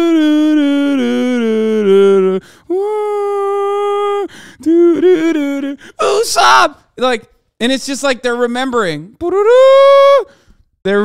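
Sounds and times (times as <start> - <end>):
man singing wordlessly: 0.0 - 7.2.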